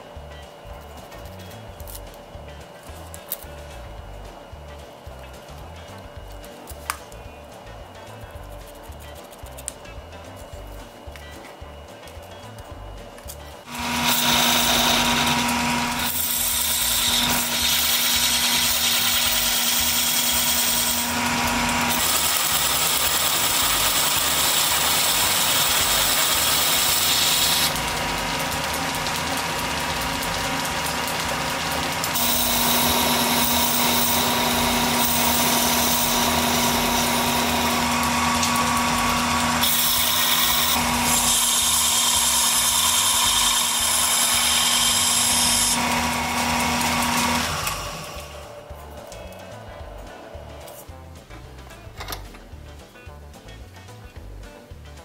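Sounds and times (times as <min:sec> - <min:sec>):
lathe motor hum: 0:13.6 - 0:48.7
tool bit cutting wood hissing: 0:13.6 - 0:48.7.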